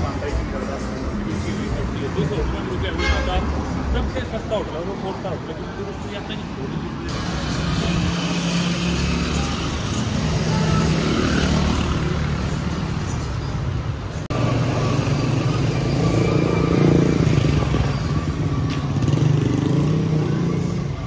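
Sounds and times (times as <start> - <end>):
car engines passing: 0.0 - 21.0
motorcycle engines passing: 0.0 - 21.0.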